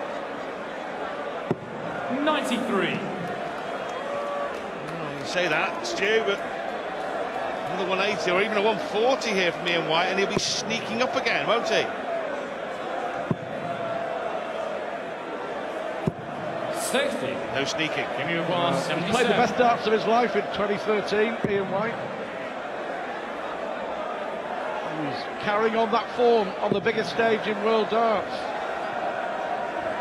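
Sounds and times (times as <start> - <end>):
murmur of arena crowd: 0.0 - 30.0.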